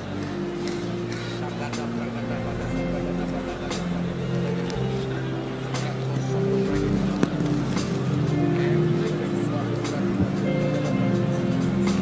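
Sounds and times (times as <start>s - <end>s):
slow held chords music: 0.0s - 12.0s.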